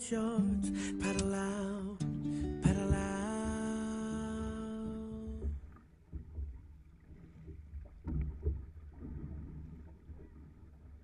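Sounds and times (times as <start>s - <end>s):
water rumble: 0.0s - 11.0s
paddles splashing in water: 2.2s - 11.0s.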